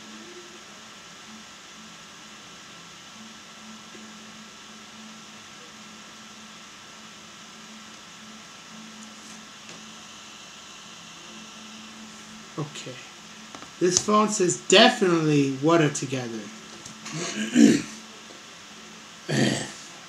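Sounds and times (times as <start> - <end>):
background hiss: 0.0 - 20.0
faint low hum: 0.0 - 20.0.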